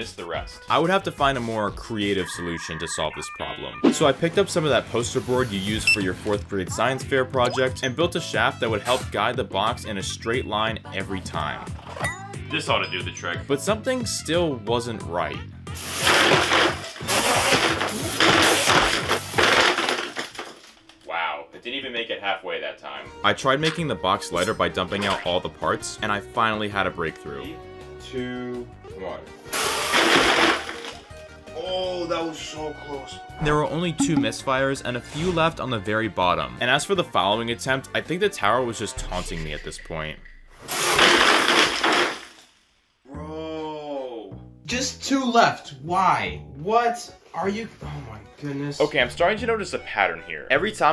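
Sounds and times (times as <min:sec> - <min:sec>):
background music: 0:00.0 - 0:17.0, 0:21.6 - 0:40.8, 0:43.1 - 0:50.9
plastic toy missiles clattering: 0:16.0 - 0:20.8.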